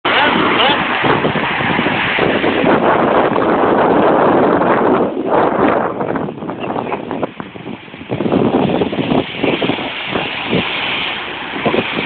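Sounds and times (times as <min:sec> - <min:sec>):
surf breaking: 0:00.0 - 0:12.0
wind on microphone: 0:00.0 - 0:12.0
men talking: 0:00.1 - 0:00.9.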